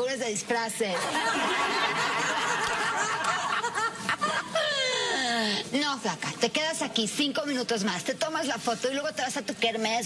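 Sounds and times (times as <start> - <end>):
audience laughter: 1.0 - 4.6.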